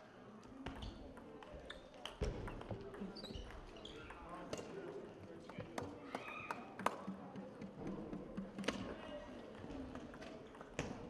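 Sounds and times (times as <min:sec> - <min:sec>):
murmur of voices: 0:00.0 - 0:11.0.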